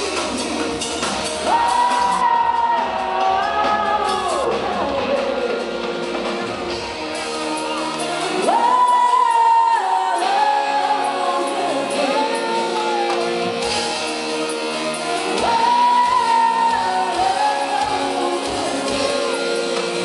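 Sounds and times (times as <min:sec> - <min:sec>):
live pop band playing: 0:00.0 - 0:20.0.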